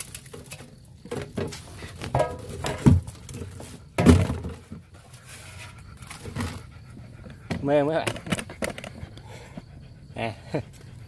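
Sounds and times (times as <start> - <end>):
dog panting: 3.5 - 11.0.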